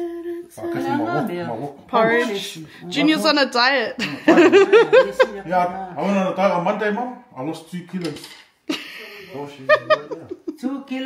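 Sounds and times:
person humming and voicing: 0.0 - 1.1.

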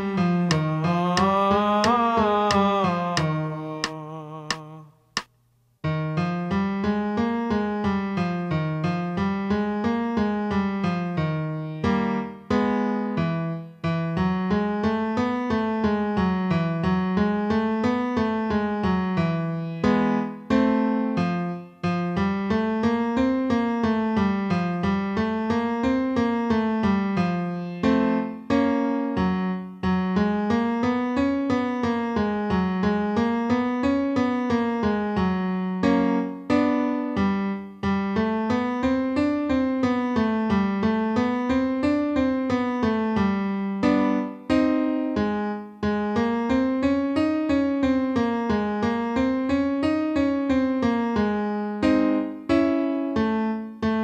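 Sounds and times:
piano playing scales: 0.0 - 4.7, 5.8 - 54.0
held piano chord: 5.9 - 54.0.

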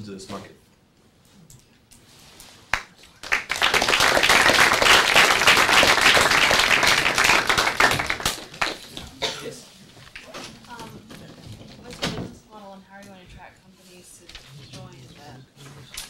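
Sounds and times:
audience applauding: 2.7 - 9.1.

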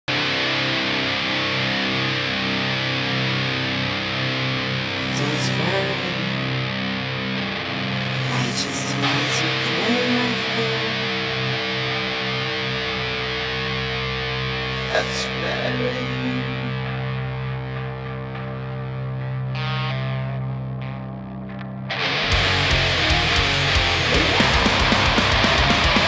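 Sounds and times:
heavy metal distorted guitars: 0.1 - 26.0
band backing track: 22.2 - 26.0.

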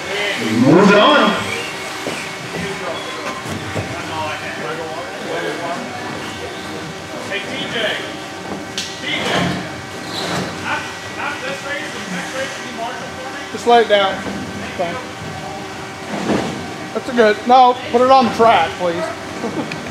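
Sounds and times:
indistinct background chatter: 0.0 - 19.9
steady hum: 0.1 - 1.9.

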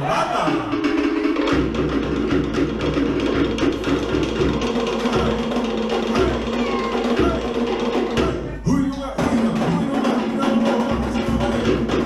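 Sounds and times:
drums beating quickly: 0.0 - 12.0.

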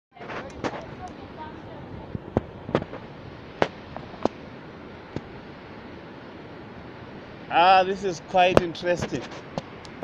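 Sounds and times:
steady background hiss: 0.2 - 10.0.

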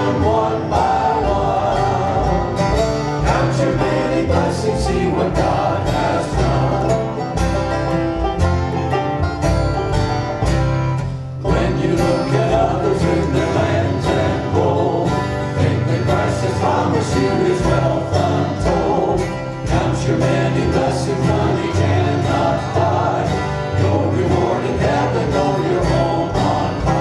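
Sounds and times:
voices singing along: 0.0 - 7.7, 11.4 - 27.0
picked banjo: 0.0 - 27.0
strummed acoustic guitars: 0.0 - 27.0.

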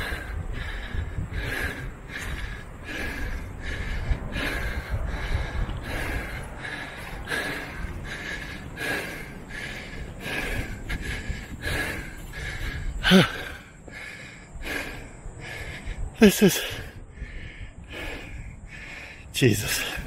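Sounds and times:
man breathing heavily: 0.0 - 20.0
voiced exhalation: 1.4 - 20.0.

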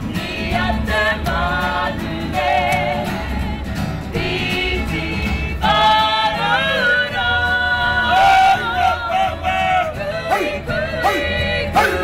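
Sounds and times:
voices singing unaccompanied: 0.0 - 12.0.

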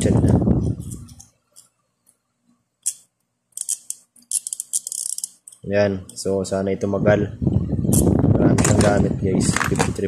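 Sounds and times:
socket wrench ratchet clicking: 3.6 - 5.6.

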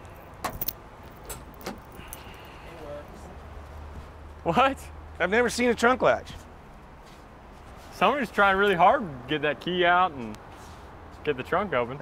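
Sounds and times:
car key jangling in lock: 0.4 - 2.4.

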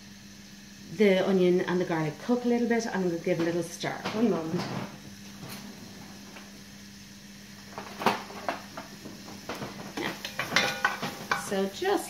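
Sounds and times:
steady low hum: 0.0 - 12.0
cookware knocks and clicks: 10.2 - 11.5.

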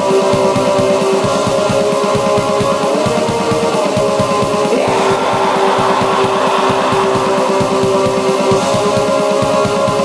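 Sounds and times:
fast drumming: 0.1 - 10.0
distorted electric guitar: 2.3 - 10.0.

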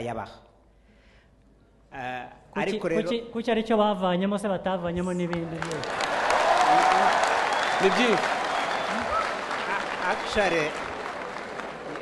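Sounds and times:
audience applauding: 5.3 - 12.0.

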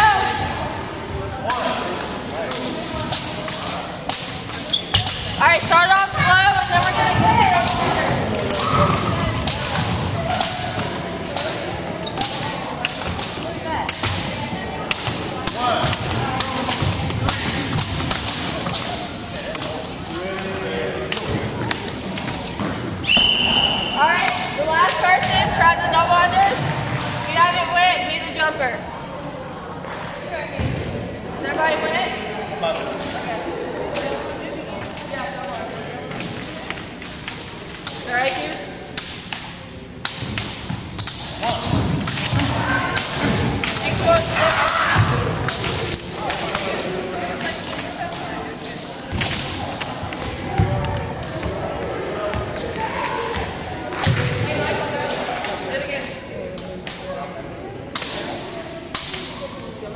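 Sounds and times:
people shouting: 43.8 - 45.3.

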